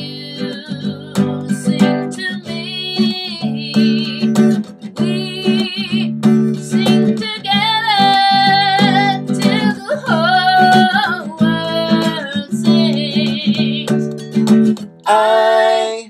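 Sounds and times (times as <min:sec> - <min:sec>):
woman singing: 0:00.0 - 0:14.1
acoustic guitar strumming: 0:00.0 - 0:16.0.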